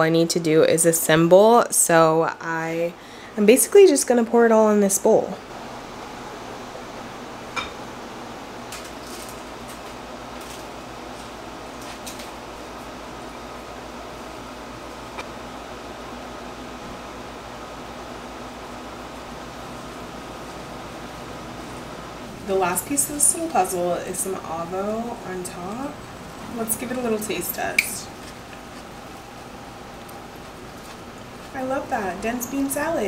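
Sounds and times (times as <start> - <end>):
room hum: 0.0 - 33.0.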